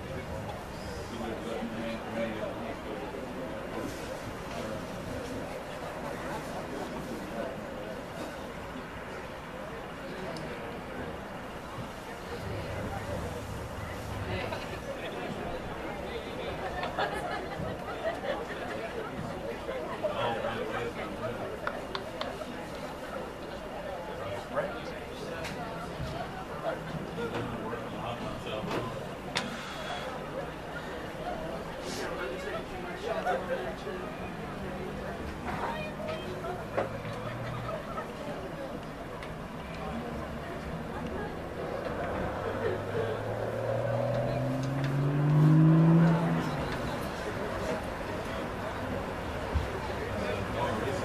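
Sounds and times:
chatter of voices: 0.0s - 51.0s
vehicle engine accelerating: 40.2s - 49.2s.

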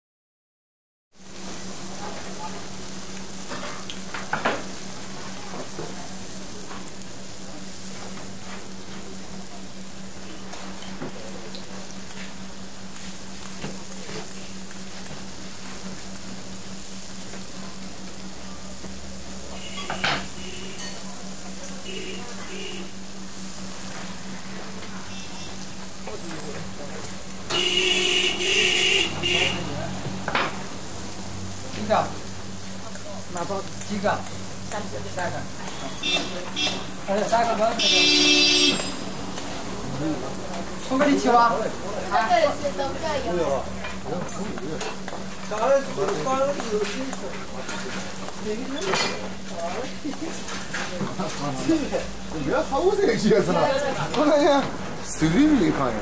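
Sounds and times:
dough deep-frying in oil: 1.2s - 56.0s.

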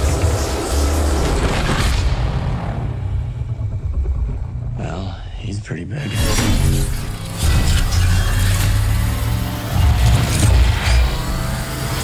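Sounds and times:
heavy low rumble: 0.0s - 7.4s
dense noisy sound effects: 0.0s - 12.0s
trailer music: 0.0s - 12.0s.

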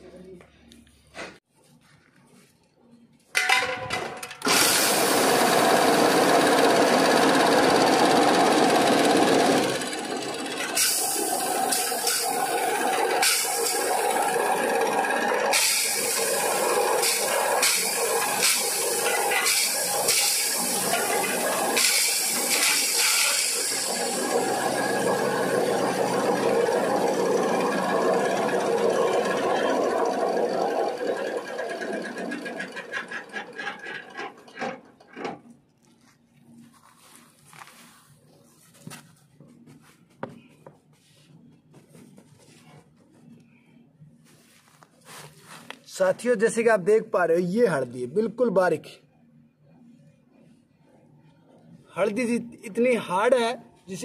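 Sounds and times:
electric grinding mill whirring: 4.4s - 35.1s.

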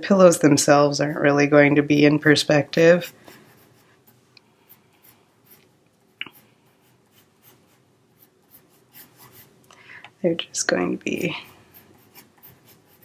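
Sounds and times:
pencil scratching on paper: 2.7s - 9.6s, 11.2s - 13.0s.

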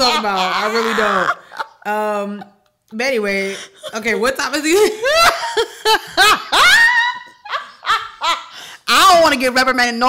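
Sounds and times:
woman laughing: 0.0s - 2.6s, 3.2s - 8.8s.

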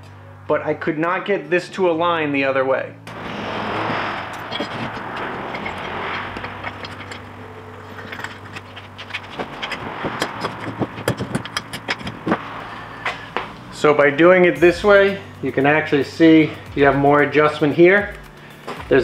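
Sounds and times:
even rushing noise: 3.1s - 14.6s
clicks and knocks of metal tubes: 4.2s - 13.5s.

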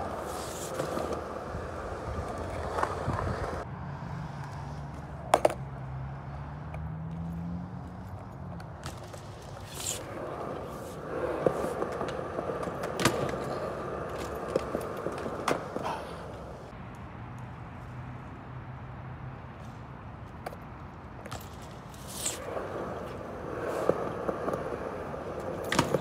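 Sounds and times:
bike tyres rolling on concrete: 0.0s - 3.7s, 4.3s - 17.9s, 19.6s - 26.0s
bike clicks and knocks: 4.4s - 5.7s, 6.7s - 17.6s, 20.2s - 26.0s.

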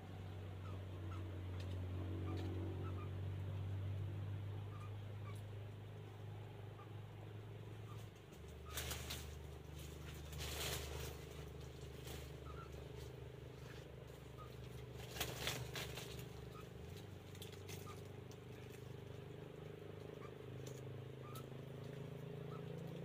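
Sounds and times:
steady low hum: 0.0s - 23.0s
faint bird chirps: 0.5s - 3.3s, 4.6s - 14.7s, 20.1s - 23.0s
dry leaves rustling and crackling: 8.1s - 19.4s.

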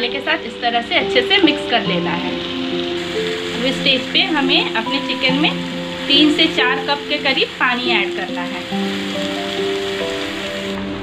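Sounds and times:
background music: 0.0s - 11.0s
water sizzling in hot pan: 0.0s - 11.0s.

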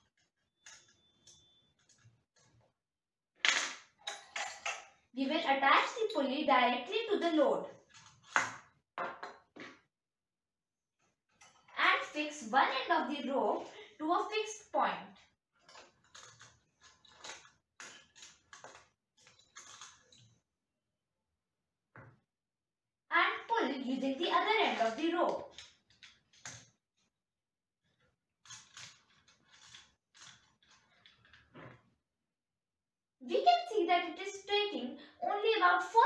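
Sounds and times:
metal hook and pulley clicking: 15.6s - 20.3s.

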